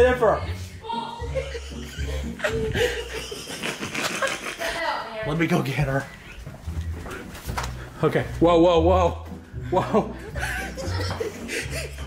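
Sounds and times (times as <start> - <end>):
man laughing: 1.4 - 4.7, 9.8 - 12.0.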